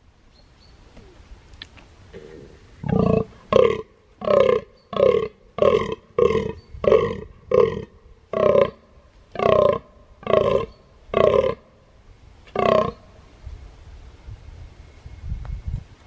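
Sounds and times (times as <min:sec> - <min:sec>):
deer rutting groans: 0:02.1 - 0:11.7, 0:12.5 - 0:13.0.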